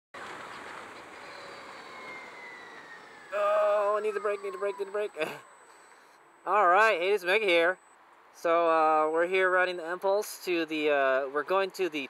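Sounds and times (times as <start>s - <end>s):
faint motorcycle engine: 0.2s - 10.2s
wind and road rush: 0.2s - 12.0s.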